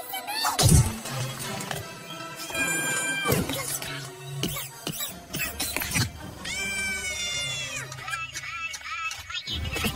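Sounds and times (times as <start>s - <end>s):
film music: 0.0s - 9.9s.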